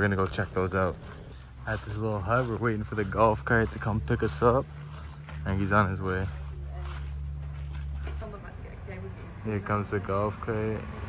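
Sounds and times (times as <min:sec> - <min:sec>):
faint voices: 0:00.0 - 0:10.8.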